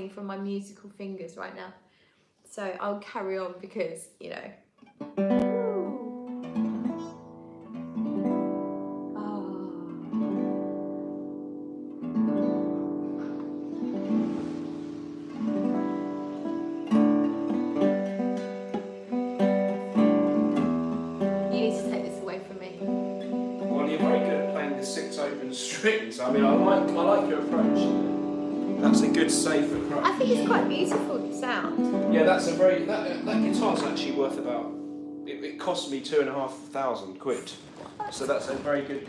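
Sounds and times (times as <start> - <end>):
acoustic guitar plucked chords: 4.9 - 38.5.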